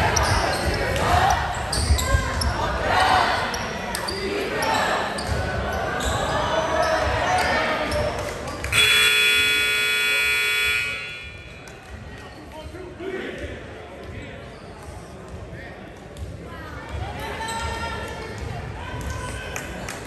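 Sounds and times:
spectators chatting: 0.0 - 20.0
scoreboard horn: 8.7 - 11.6.

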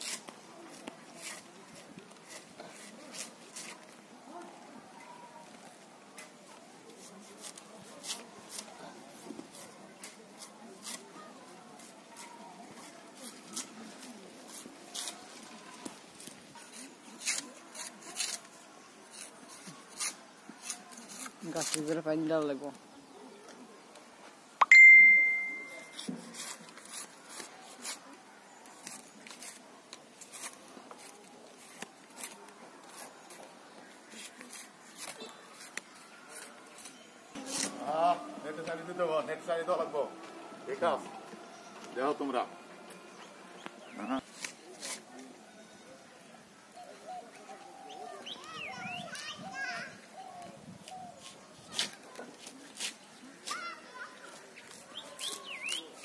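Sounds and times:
knife blade scraping bark: 0.0 - 3.9, 9.5 - 11.2, 11.8 - 15.2, 16.2 - 18.5, 19.1 - 22.0, 24.8 - 28.1, 28.8 - 33.4, 34.1 - 39.1, 44.0 - 45.3, 54.6 - 56.0
children calling and chattering: 0.0 - 22.1, 22.7 - 56.0.

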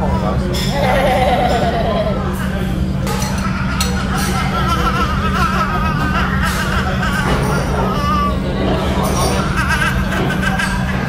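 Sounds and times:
toddler laughing: 0.7 - 11.0.

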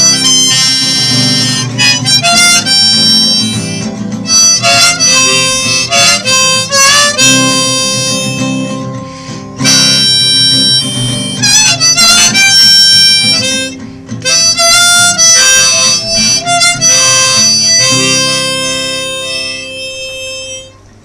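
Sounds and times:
acoustic guitar accompaniment: 0.0 - 21.0
harmonica solo: 0.0 - 21.0.

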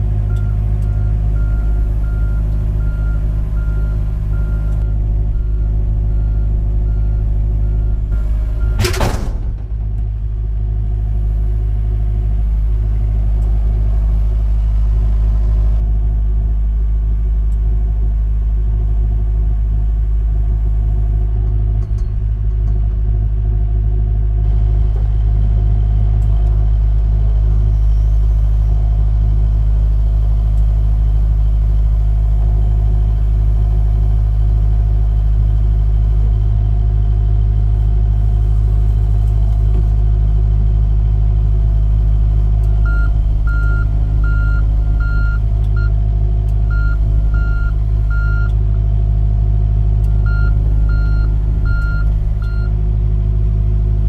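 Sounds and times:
excavator diesel engine rumbling: 0.0 - 54.0.

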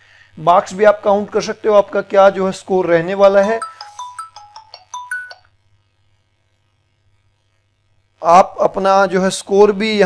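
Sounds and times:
bright chime jingle: 3.4 - 5.4.

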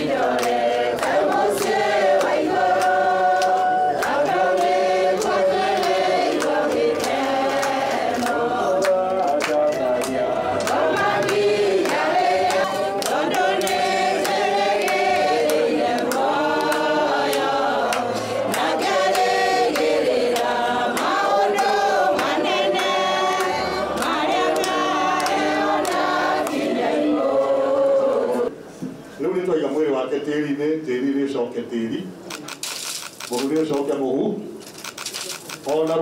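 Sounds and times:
hand claps: 0.0 - 26.7
women singing unaccompanied: 0.0 - 28.5.

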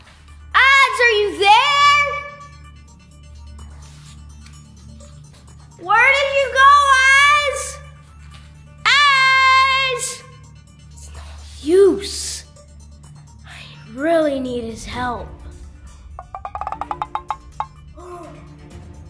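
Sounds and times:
low background music: 0.0 - 19.0
boy yelling: 0.6 - 2.3, 8.9 - 10.3.

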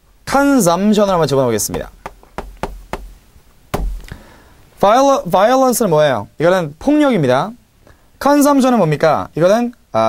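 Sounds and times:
chalk tapping on chalkboard: 1.1 - 3.2, 3.8 - 4.1
loud knock: 1.1 - 4.2.

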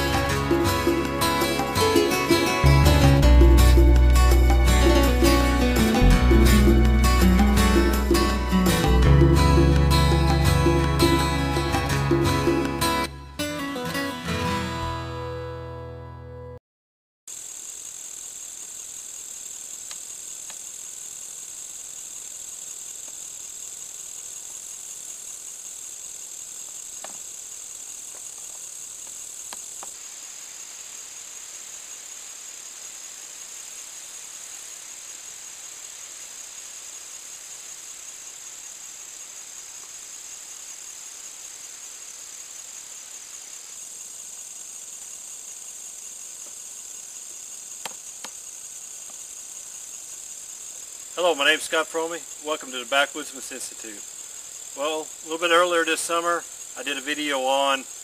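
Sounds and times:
crickets and insects chirping: 0.0 - 13.1, 17.3 - 58.0.

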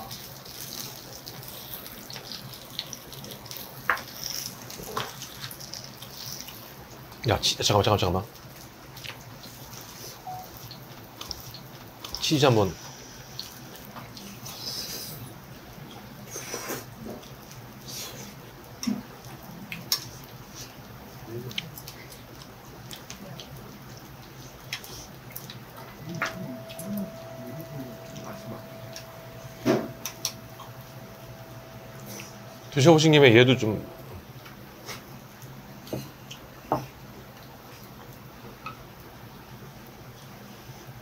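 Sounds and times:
chewing and mouth noises: 0.0 - 7.2, 8.3 - 32.6
faint steady hum: 0.0 - 41.0
person murmuring mm: 25.9 - 28.7.

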